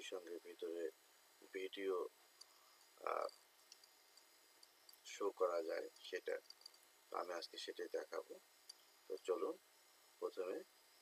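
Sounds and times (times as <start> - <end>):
faint tiny ticks: 2.3 - 5.1, 5.9 - 6.9.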